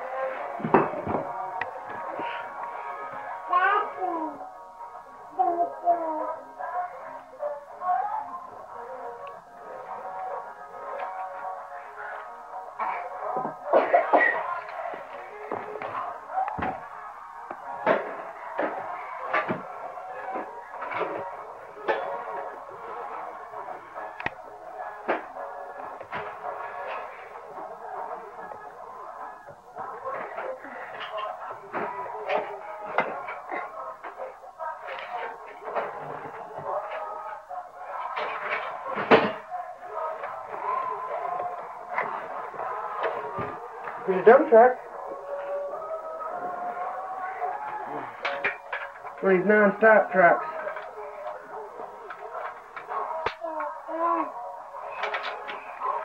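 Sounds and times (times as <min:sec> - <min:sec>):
music playing in room: 0:00.0 - 0:56.0.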